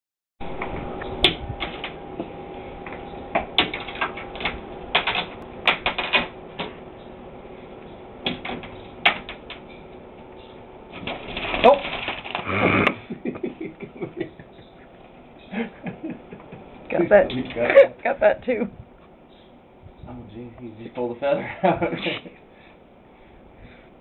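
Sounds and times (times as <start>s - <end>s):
faint steady hum: 0.4s - 24.0s.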